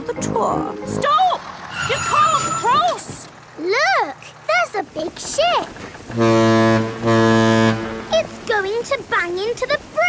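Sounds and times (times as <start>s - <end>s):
low ship's horn blasts: 6.0s - 8.2s.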